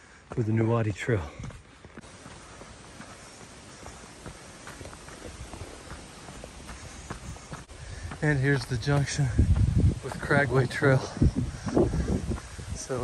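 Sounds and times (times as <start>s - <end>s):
footsteps on dirt trail: 0.0s - 13.0s.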